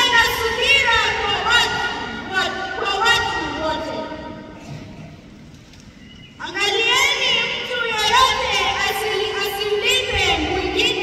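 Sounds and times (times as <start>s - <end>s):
boy reading aloud: 6.4s - 11.0s.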